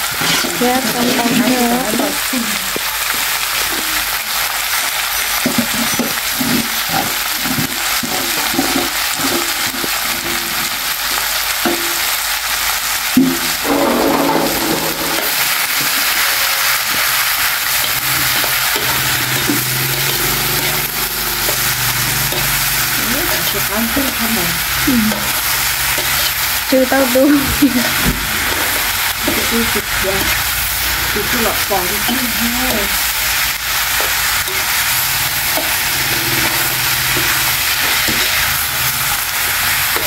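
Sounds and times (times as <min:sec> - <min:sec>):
stirring in a pan: 0:00.0 - 0:03.8, 0:13.1 - 0:40.0
food sizzling in a hot pan: 0:00.0 - 0:40.0.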